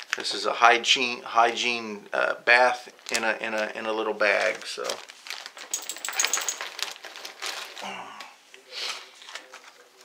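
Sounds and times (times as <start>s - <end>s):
plastic packaging crinkling: 3.0s - 7.9s
small clicks and light clinks: 5.7s - 6.7s.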